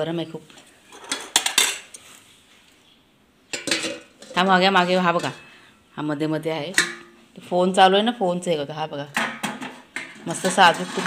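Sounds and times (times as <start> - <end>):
metal dishes clattering: 0.9 - 1.9, 3.5 - 5.6, 6.7 - 7.2, 9.2 - 11.0.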